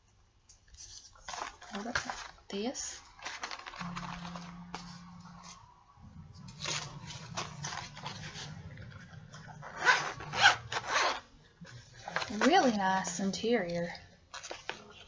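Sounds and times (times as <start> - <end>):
low steady hum: 3.8 - 14.4
zipper pulled open: 9.6 - 11.3.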